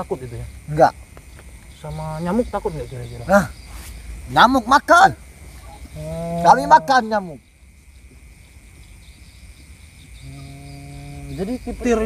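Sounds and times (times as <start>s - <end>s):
crickets chirping: 0.0s - 12.0s
man speaking: 6.3s - 7.4s.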